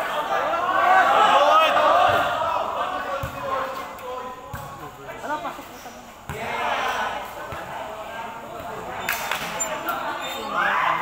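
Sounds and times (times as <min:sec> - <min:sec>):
players shouting and chatting: 0:00.0 - 0:11.0.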